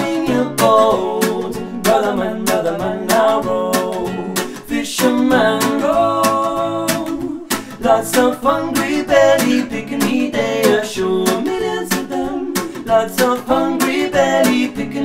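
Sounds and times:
acoustic guitar strumming: 0.0 - 15.0
men singing: 0.0 - 15.0.

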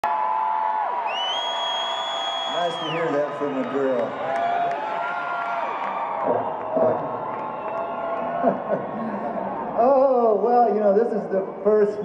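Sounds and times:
crowd cheering and whooping: 0.0 - 10.4
shrill whistle: 1.1 - 3.2.

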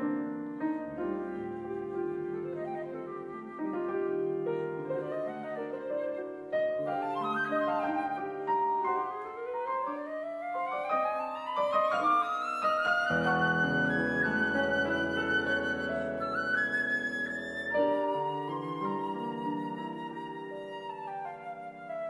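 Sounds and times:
flute melody: 0.0 - 22.0
grand piano chords: 0.0 - 22.0.

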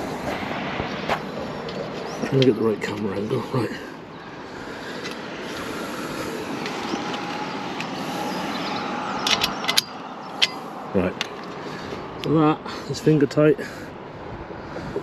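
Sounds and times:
steady rushing noise: 0.0 - 9.3
sharp metal clicks: 9.2 - 10.6.

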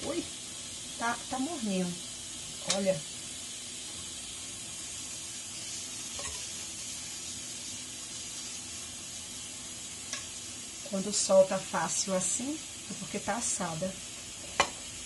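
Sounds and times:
steady hiss: 0.0 - 15.0.

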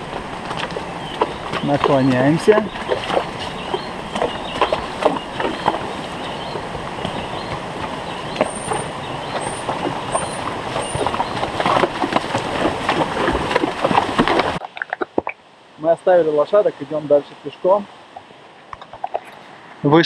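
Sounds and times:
hooves splashing on stones: 0.0 - 15.4
stream rushing: 0.0 - 20.0.

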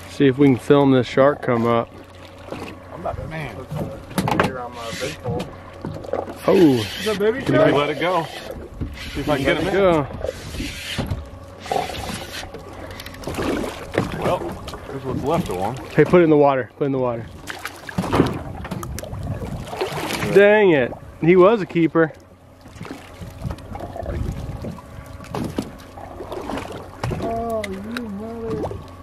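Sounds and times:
water sloshing against boat: 0.0 - 29.0
steady low rumble: 9.6 - 29.0.

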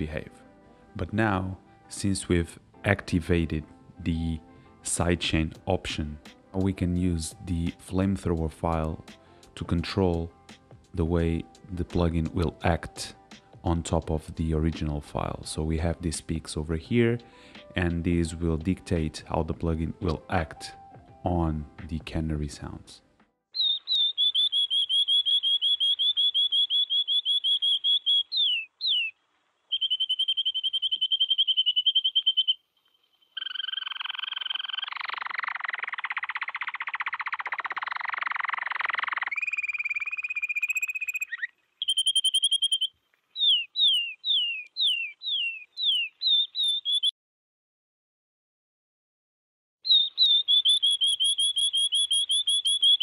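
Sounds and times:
canary singing trills: 23.6 - 47.1, 49.8 - 53.0.

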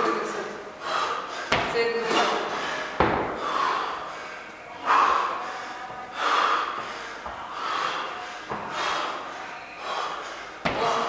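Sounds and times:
rasping heavy breathing: 0.7 - 11.0.

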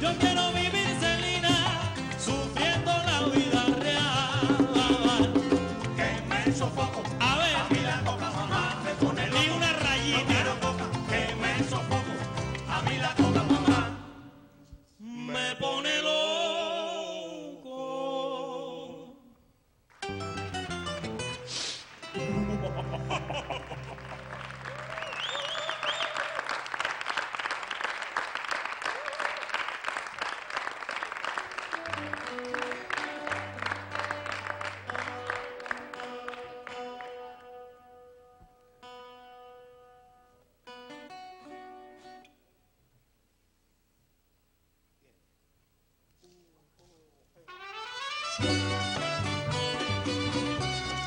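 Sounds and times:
bass and plucked strings: 0.0 - 14.2, 20.0 - 24.9, 48.4 - 51.0
audience applauding: 21.8 - 37.3
whistles from audience: 24.7 - 26.6
brass band playing: 47.5 - 51.0.

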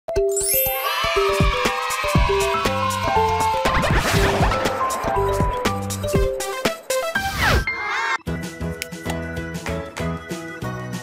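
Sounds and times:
chiming jingle notes: 0.2 - 1.6
rising sparkly sweep: 1.7 - 7.5.

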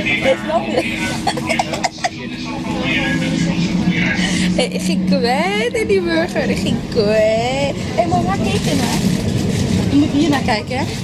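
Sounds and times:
train carriage rumbling: 0.0 - 11.0
woman laughing: 0.2 - 2.4.

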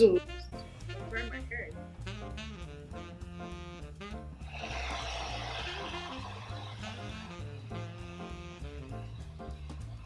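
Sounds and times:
jazz music: 0.0 - 10.0
hair dryer blowing: 4.5 - 7.2.

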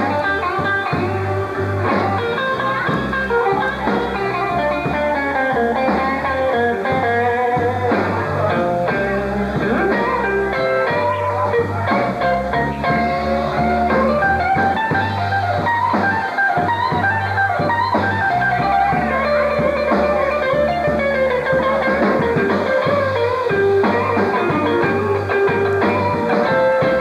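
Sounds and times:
bass: 0.0 - 27.0
drum kit: 0.0 - 27.0
electric guitars: 0.0 - 27.0.

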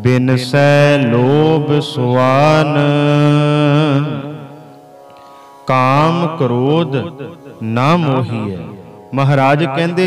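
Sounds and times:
low drone: 5.1 - 9.2
man singing a held note: 7.9 - 9.0.

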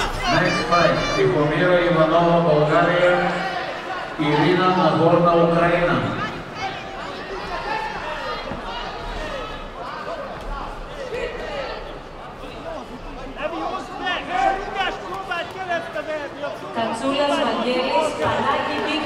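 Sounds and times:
indistinct chatter in a large hall: 0.0 - 19.0.

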